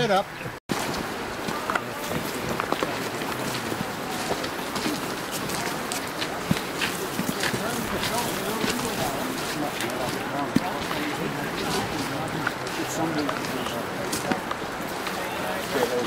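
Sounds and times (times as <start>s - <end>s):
footsteps crunching on gravel: 0.7s - 16.0s
people talking indistinctly: 1.4s - 16.0s.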